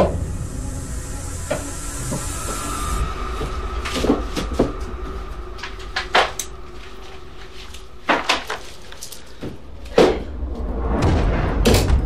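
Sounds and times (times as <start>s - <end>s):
thin high tone: 0.0s - 8.0s
low rumble and hiss: 0.0s - 12.0s.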